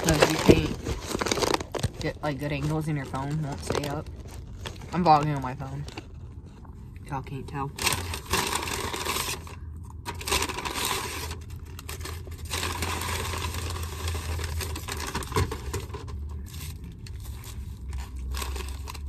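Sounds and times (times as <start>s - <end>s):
paper bag rustling and crinkling: 0.0s - 6.7s, 7.5s - 19.0s
steady low hum: 0.0s - 19.0s.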